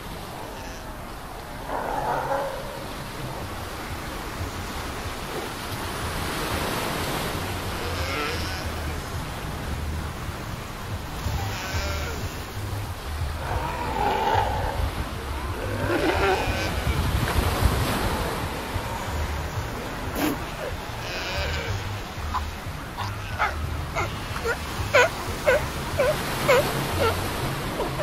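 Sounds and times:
sea lions calling: 0:00.0 - 0:09.4, 0:11.0 - 0:28.0
surf: 0:00.0 - 0:28.0.

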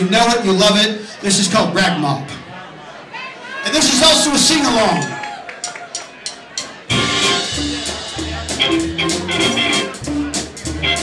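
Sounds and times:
live band playing: 0:05.9 - 0:11.0.

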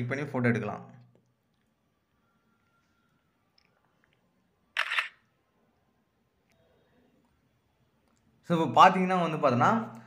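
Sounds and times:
phone camera shutter click: 0:04.8 - 0:05.2.

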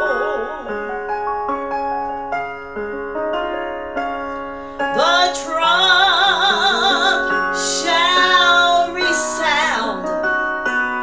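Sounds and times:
woman singing a hymn: 0:00.0 - 0:00.8, 0:04.9 - 0:10.1
instrumental accompaniment: 0:00.0 - 0:11.0.

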